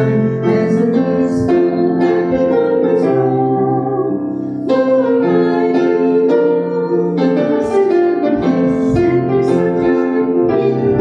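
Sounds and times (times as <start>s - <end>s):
congregation singing: 0.0s - 11.0s
piano accompaniment: 0.0s - 11.0s.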